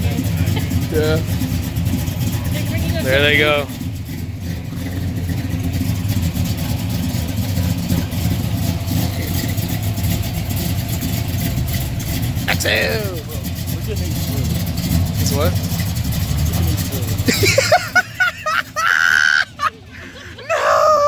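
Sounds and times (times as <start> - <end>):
car engines rumbling: 0.0 - 21.0
person calling out: 12.5 - 13.2, 20.5 - 21.0.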